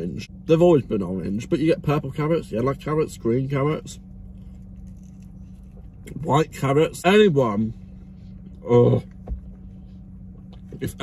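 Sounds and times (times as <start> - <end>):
steady low hum: 0.0 - 11.0
crackly handling noises: 4.2 - 6.1
faint chewing: 4.2 - 6.1.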